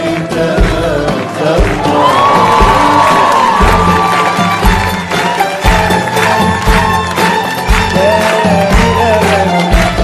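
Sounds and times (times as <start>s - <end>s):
audience clapping and cheering: 0.0s - 10.0s
drum beats: 0.0s - 10.0s
orchestral music with violins: 0.0s - 10.0s.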